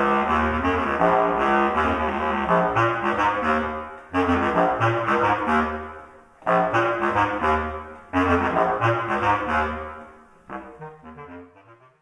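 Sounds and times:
bass clarinets playing: 0.0s - 12.0s.

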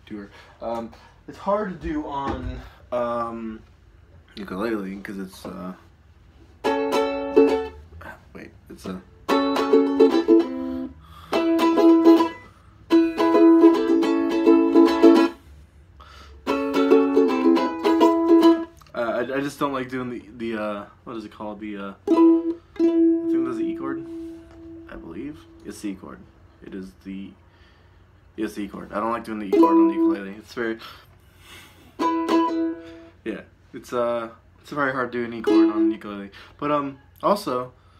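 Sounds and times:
ukulele chords strummed: 6.6s - 7.8s, 8.8s - 15.4s, 16.4s - 18.8s, 22.0s - 25.8s, 29.5s - 30.3s, 32.0s - 33.1s, 35.4s - 36.0s.

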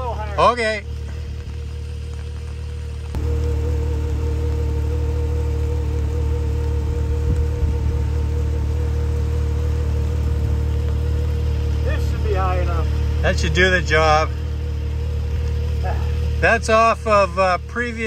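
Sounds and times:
engine idling: 0.0s - 18.0s.

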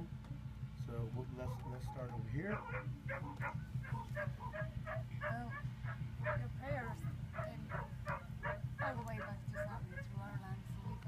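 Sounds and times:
steady low hum: 0.0s - 11.0s
dog yipping: 1.4s - 6.5s, 7.3s - 10.2s, 10.8s - 11.0s.

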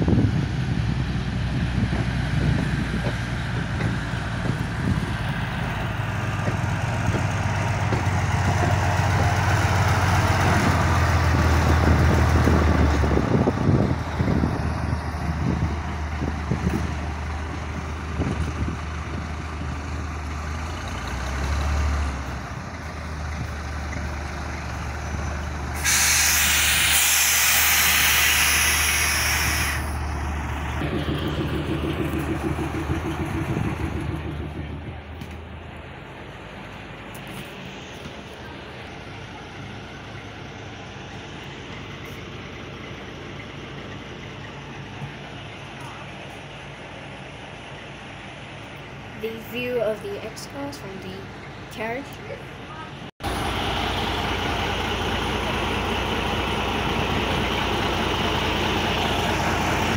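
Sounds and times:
locomotive diesel engine running: 0.0s - 59.9s
air brakes hissing: 25.7s - 30.0s.

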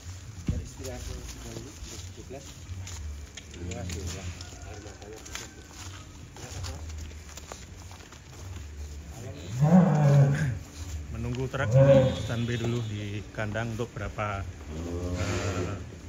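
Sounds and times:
cow mooing: 9.4s - 10.6s, 11.5s - 12.8s, 14.7s - 16.0s.

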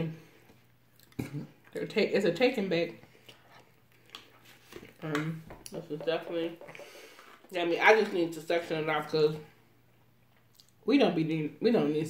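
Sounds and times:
person chewing food: 0.4s - 1.8s, 3.0s - 5.0s.

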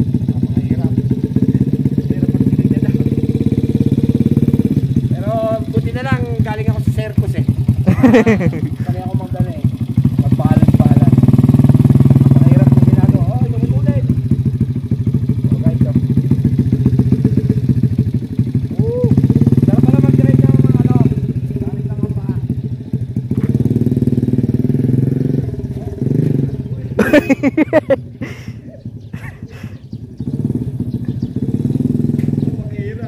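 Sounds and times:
motorcycle engine revving: 0.0s - 33.0s.

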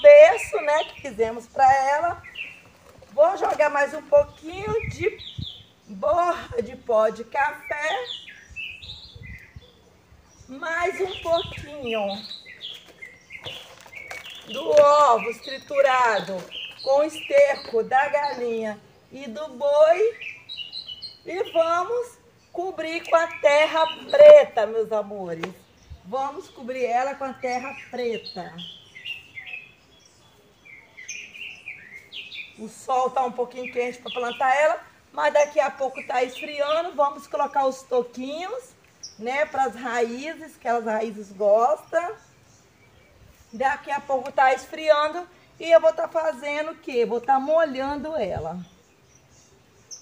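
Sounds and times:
small bird chirping: 2.1s - 5.9s, 7.6s - 19.2s, 19.9s - 24.4s, 27.4s - 32.6s, 48.3s - 50.0s.

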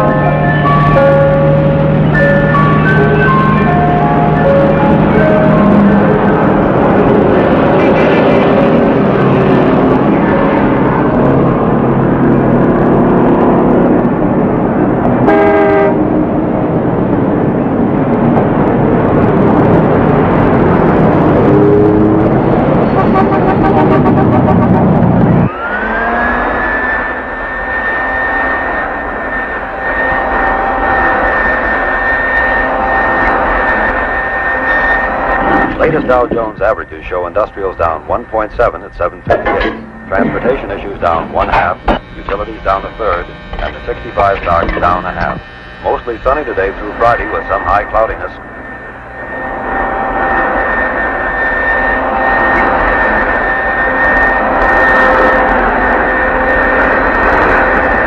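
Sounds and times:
ice cream truck chime melody: 0.0s - 7.0s
jet engine whine: 0.0s - 58.0s
street traffic: 0.0s - 58.0s
car horn: 15.2s - 16.0s, 22.8s - 25.5s.

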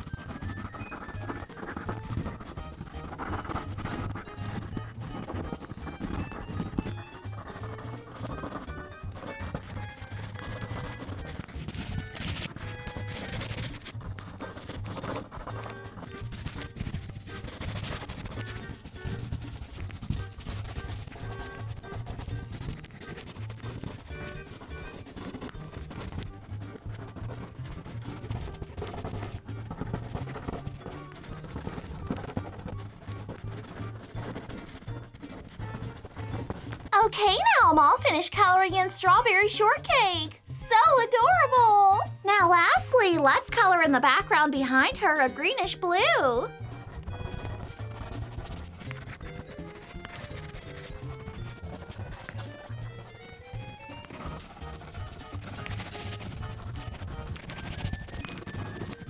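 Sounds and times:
crayon scratching on paper: 0.0s - 59.0s
soft background music: 0.0s - 59.0s.

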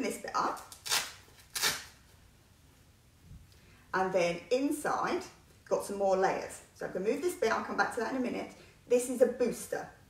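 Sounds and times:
hook-and-loop fastener ripping: 0.6s - 2.0s.

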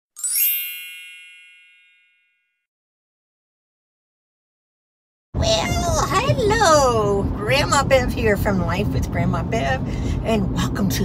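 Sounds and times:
bright chime: 0.2s - 2.6s.

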